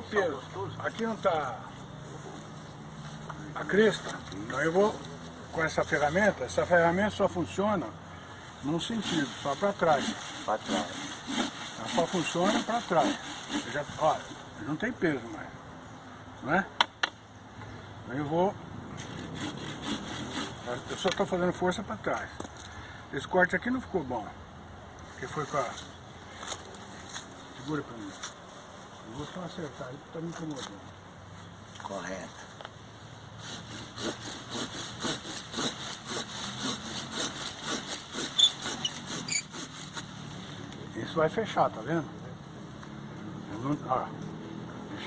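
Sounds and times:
hand saw cutting branch: 8.6 - 14.5, 19.0 - 21.5, 33.4 - 40.4.

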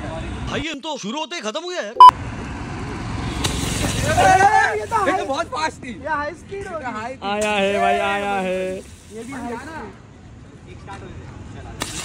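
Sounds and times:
firework hissing and fizzing: 8.2 - 9.8, 11.8 - 12.0
firework crack: 11.8 - 12.0.

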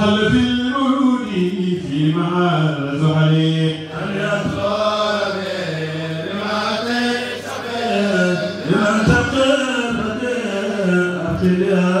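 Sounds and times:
devotional chanting: 0.0 - 12.0.

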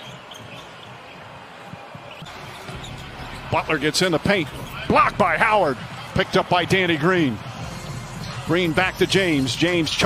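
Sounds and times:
arena background noise: 0.0 - 8.8.

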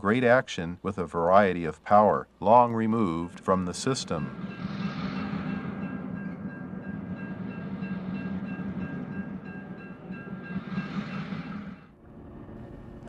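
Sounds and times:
freight train rumbling: 2.5 - 13.0.

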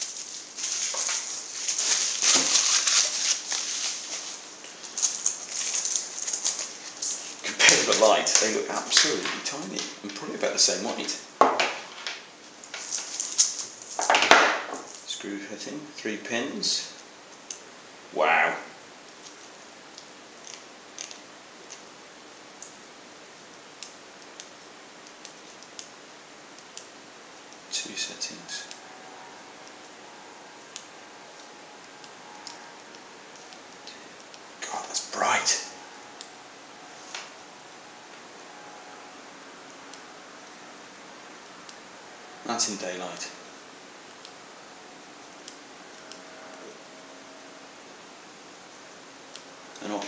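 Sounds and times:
plastic wrapping crinkling: 0.0 - 10.2, 11.6 - 15.0
background hiss: 0.0 - 50.0.

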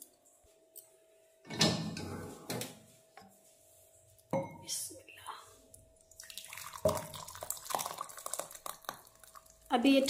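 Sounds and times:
thick liquid plopping into bowl: 6.2 - 9.5.

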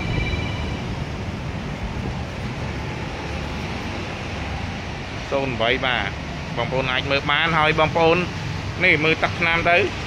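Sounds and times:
brief high-pitched tone: 0.0 - 1.0.

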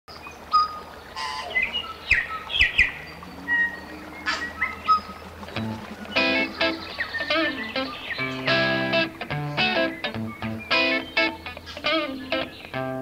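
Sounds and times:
birds chirping and whistling: 0.4 - 12.9
music: 5.7 - 13.0.

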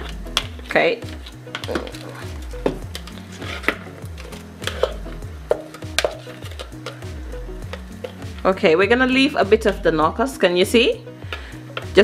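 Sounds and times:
background music with bass line: 0.0 - 12.0
spatula tapping plastic bowl: 2.6 - 8.5, 11.3 - 12.0.

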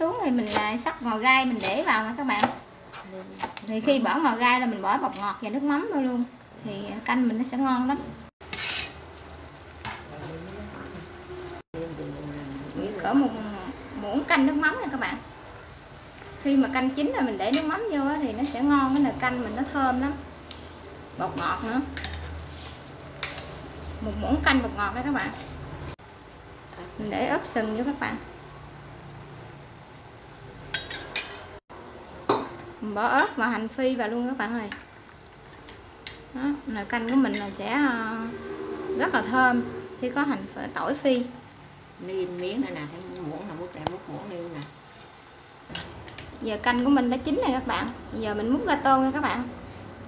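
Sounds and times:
knife scraping herbs into pot: 0.3 - 0.8, 8.4 - 9.1
soup simmering with a hiss: 8.2 - 19.0, 19.6 - 24.0, 24.8 - 26.8, 27.5 - 32.8, 33.5 - 37.0, 37.8 - 47.4.

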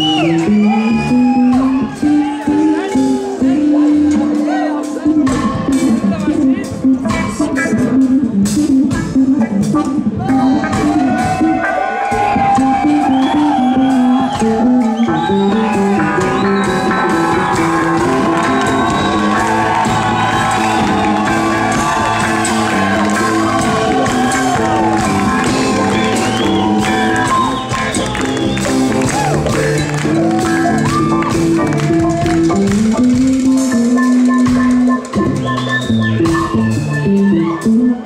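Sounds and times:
bass: 0.0 - 38.0
drums: 0.0 - 38.0
electric guitar lines: 12.6 - 38.0.

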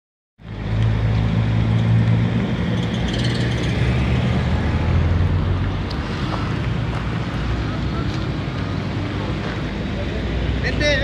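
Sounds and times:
street noise: 0.4 - 11.0
vehicle engine humming: 0.4 - 11.0.

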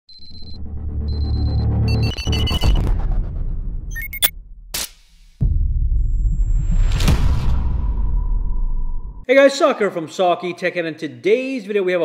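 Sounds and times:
cluster of high electronic tones: 0.1 - 2.8, 3.9 - 4.3
high electronic beeps: 0.1 - 2.9, 3.9 - 4.3
deep bass drone: 0.2 - 4.7, 5.4 - 9.2.

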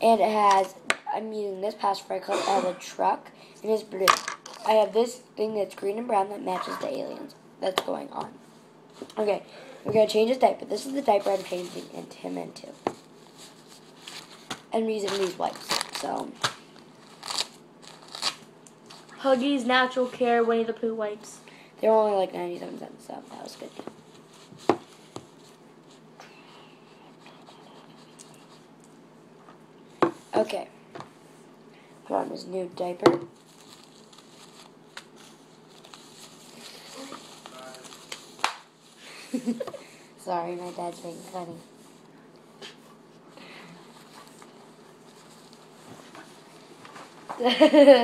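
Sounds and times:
plastic wipes pack crinkling: 13.0 - 19.2, 33.4 - 38.8.

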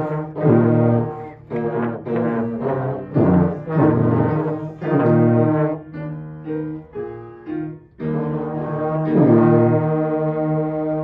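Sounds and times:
downward brass pitch glide: 0.0 - 6.2, 8.0 - 11.0
brass ensemble sustained chord: 0.0 - 7.0, 8.0 - 11.0.

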